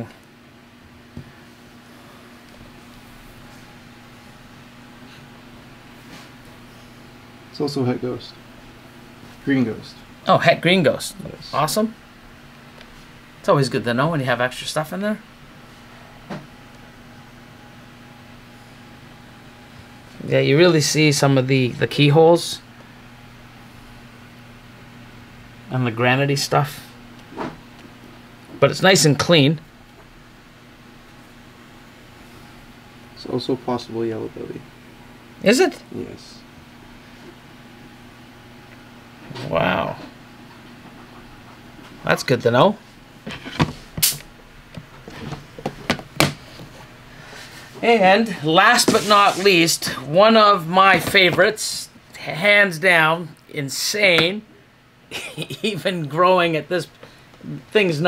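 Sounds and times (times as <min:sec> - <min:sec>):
low electrical hum: 0:00.0 - 0:58.0.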